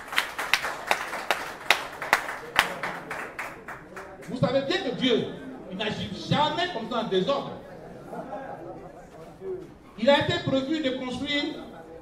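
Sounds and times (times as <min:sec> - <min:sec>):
small crowd clapping: 0:00.0 - 0:04.4.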